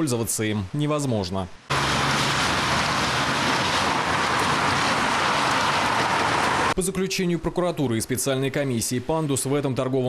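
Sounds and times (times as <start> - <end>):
street ambience rushing noise: 1.6 - 6.8.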